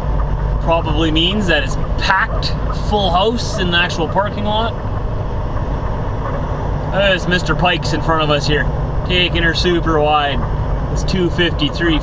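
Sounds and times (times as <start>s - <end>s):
diesel truck engine rumbling: 0.0s - 12.0s.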